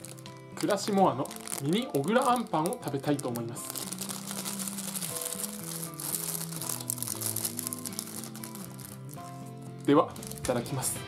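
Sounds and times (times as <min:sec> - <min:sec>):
plastic bag crinkling: 0:00.0 - 0:10.9
background music: 0:00.0 - 0:11.0.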